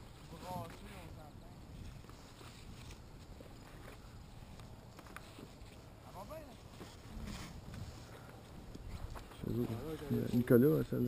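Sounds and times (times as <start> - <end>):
wind rumble on microphone: 0.0 - 4.8, 7.0 - 10.5
harness straps rustling and clicking: 1.6 - 10.6.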